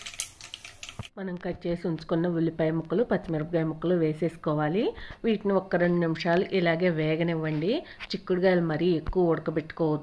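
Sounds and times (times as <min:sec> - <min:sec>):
spices crackling in hot oil: 0:00.0 - 0:01.1.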